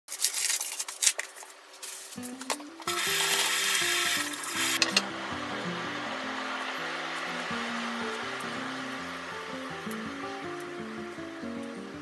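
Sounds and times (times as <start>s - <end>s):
plastic packaging crinkling: 0.1s - 4.6s.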